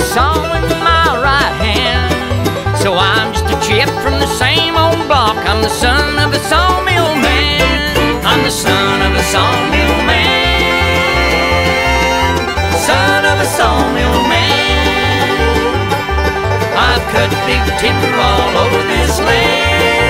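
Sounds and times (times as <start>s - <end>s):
banjo picking: 0.0s - 20.0s
bluegrass band instrumental: 0.0s - 20.0s
upright bass line: 0.0s - 20.0s.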